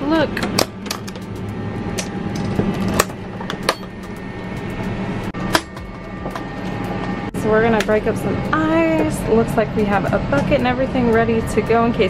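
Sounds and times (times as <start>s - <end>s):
low cabin hum: 0.0s - 12.0s.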